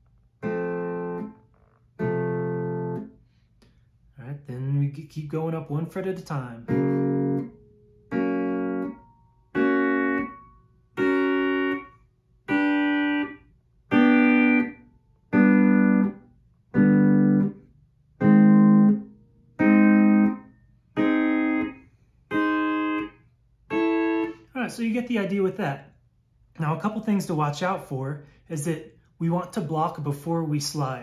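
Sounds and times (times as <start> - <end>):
pedal steel guitar chords: 0.0 - 3.2, 6.2 - 25.6.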